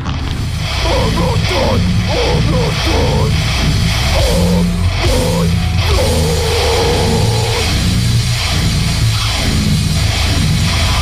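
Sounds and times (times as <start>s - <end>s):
loud heavy metal music: 0.0s - 11.0s.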